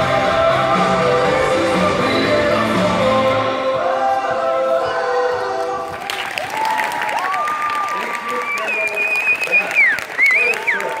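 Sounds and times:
recorded music: 0.0 - 6.7
audience applause: 5.8 - 11.0
audience cheering: 6.0 - 11.0
high whistles: 8.4 - 11.0.

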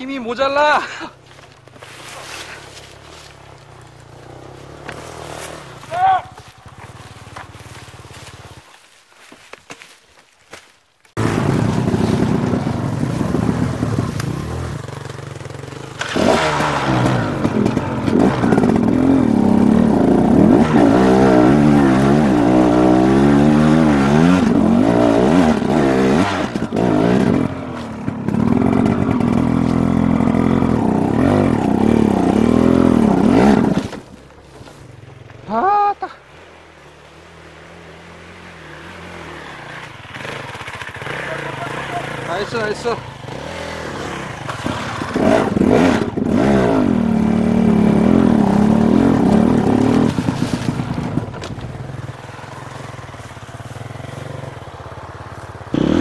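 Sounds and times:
dirt bike engine revving: 1.8 - 8.8, 11.2 - 34.3, 35.2 - 56.0.

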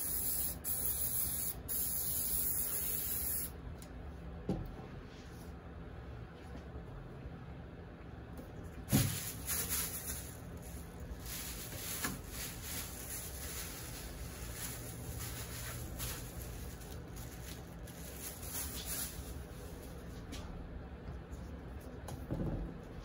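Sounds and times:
spray paint can hissing: 0.0 - 3.5.

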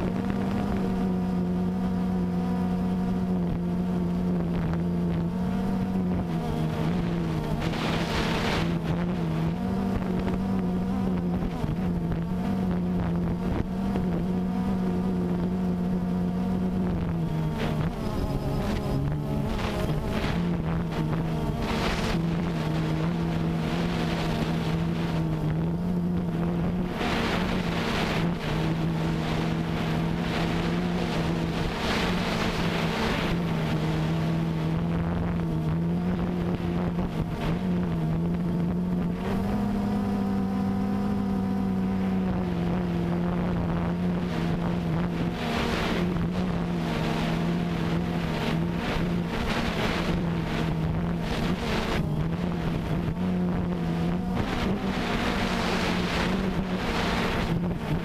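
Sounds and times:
drone propellers buzzing: 0.0 - 58.0
wind buffeting microphone: 4.4 - 14.2, 41.9 - 58.0.

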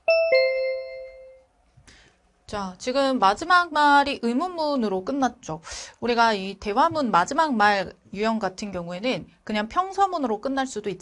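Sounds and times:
two-note electronic chime: 0.0 - 1.5.

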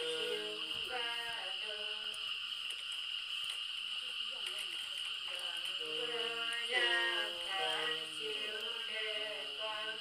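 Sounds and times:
women singing unaccompanied: 0.0 - 2.2, 5.3 - 10.0.

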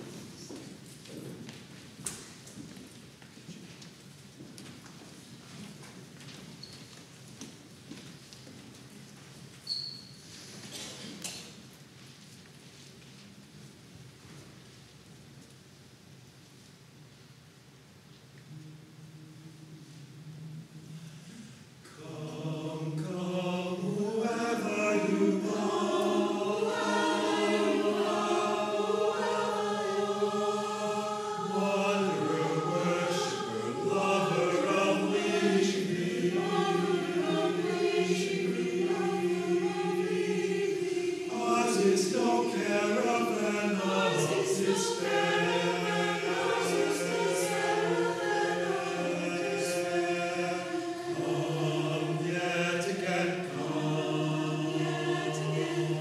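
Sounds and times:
mixed choir singing in harmony: 18.5 - 56.0.

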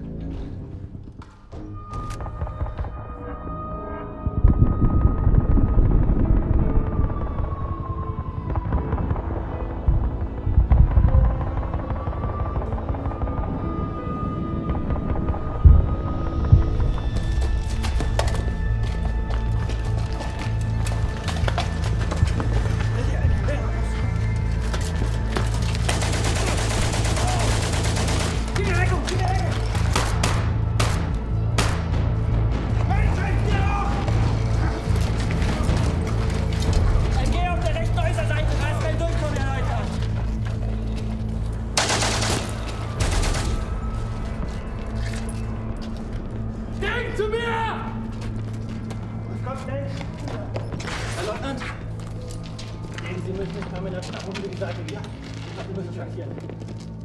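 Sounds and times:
gunfire: 29.8 - 32.0, 41.8 - 43.7.

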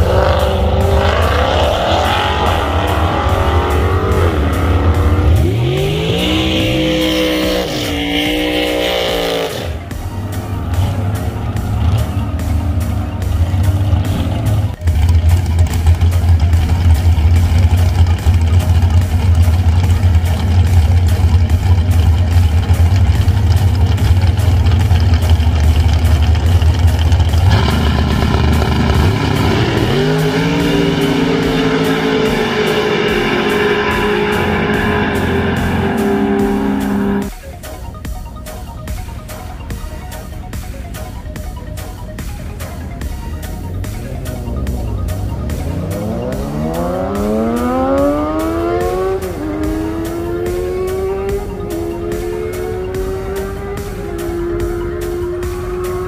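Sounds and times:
cars accelerating: 0.0 - 37.4, 39.2 - 56.0
dragster engine idling loudly: 13.2 - 36.0.

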